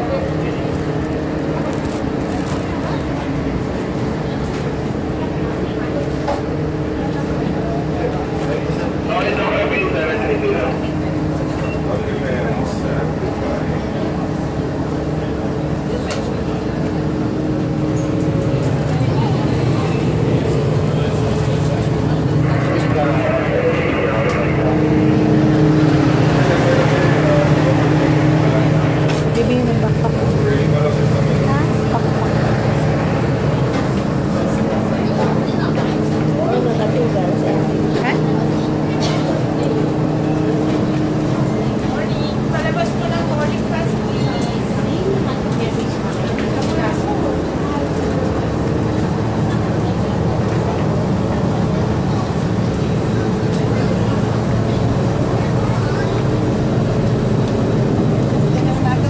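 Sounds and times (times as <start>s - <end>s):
airliner cabin hum: 0.0s - 59.0s
passengers talking indistinctly: 0.0s - 59.0s.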